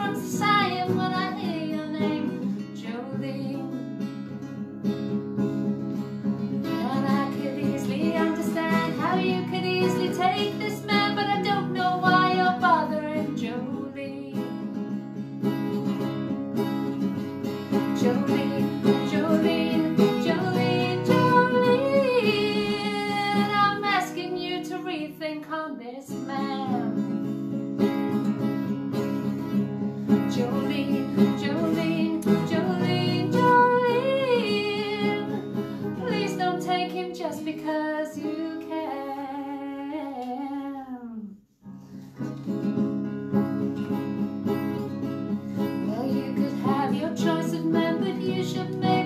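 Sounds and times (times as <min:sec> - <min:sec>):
woman singing: 0:00.0 - 0:04.1, 0:06.6 - 0:14.9, 0:17.7 - 0:27.2, 0:30.1 - 0:41.4, 0:45.6 - 0:49.0
strummed acoustic guitar: 0:00.0 - 0:25.2, 0:26.1 - 0:39.0, 0:41.6 - 0:49.0.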